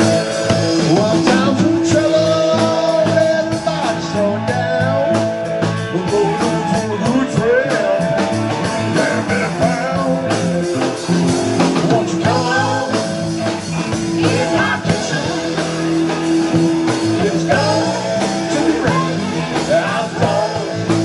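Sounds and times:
drum kit: 0.0 - 21.0
electric guitar: 0.0 - 21.0
live band playing: 0.0 - 21.0.

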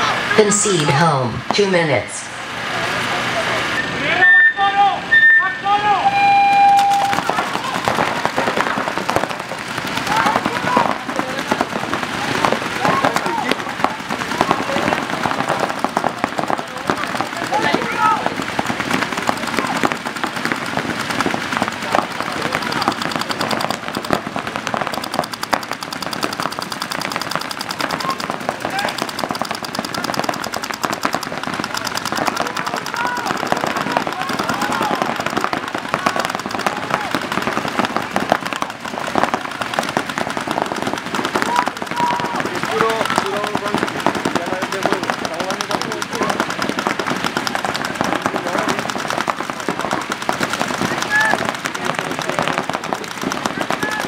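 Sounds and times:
voices shouting: 4.0 - 23.2, 31.4 - 43.9, 46.0 - 54.0
paintball markers firing: 6.8 - 54.0.

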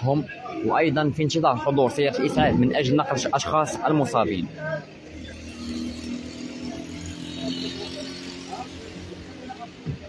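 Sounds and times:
traffic noise: 0.0 - 10.0
vehicle engine humming: 0.0 - 10.0.

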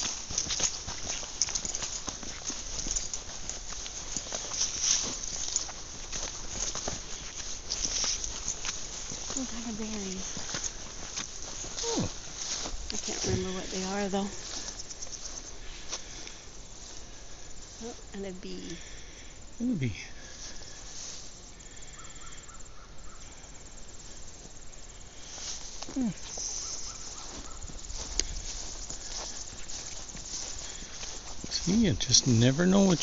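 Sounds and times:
insects chirping: 0.0 - 33.0
murmured voice sounds: 19.6 - 20.1.

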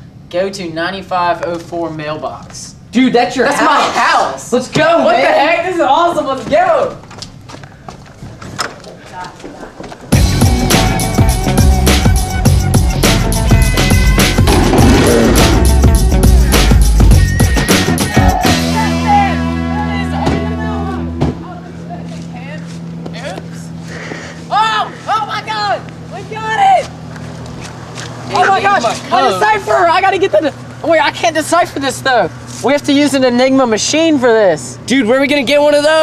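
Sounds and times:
vehicle engine humming: 10.0 - 35.9
people calling out: 13.8 - 22.3, 24.4 - 27.1.

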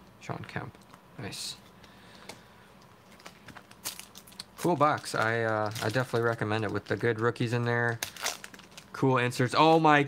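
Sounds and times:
card pack wrapper handled: 3.1 - 9.0.

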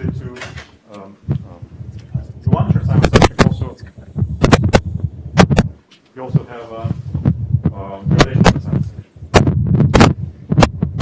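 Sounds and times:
man lecturing: 0.0 - 4.1, 6.2 - 7.1, 7.7 - 9.0
low electrical hum: 0.0 - 11.0.

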